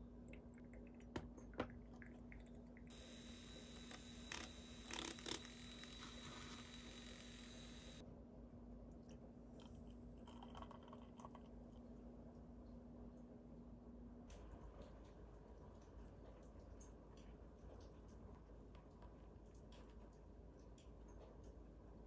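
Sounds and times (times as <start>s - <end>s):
low steady hum: 0.0s - 14.6s
milk trickling into a mug: 9.6s - 11.8s.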